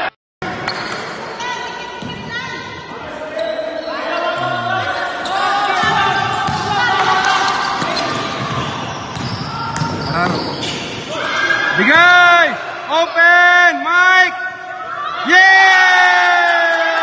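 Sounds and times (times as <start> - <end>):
people shouting in a hall: 1.3 - 10.0, 11.0 - 17.0.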